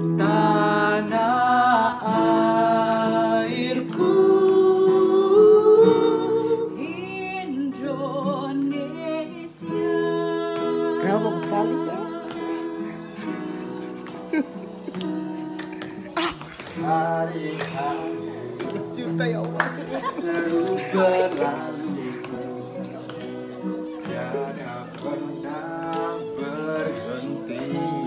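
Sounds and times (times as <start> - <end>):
person singing: 0.0 - 15.0, 15.7 - 19.2, 19.8 - 28.0.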